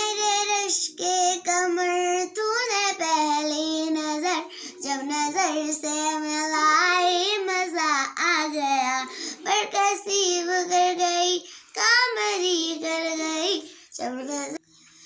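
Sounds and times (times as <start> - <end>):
short breath: 9.1 - 9.4, 11.4 - 11.7, 14.6 - 15.0.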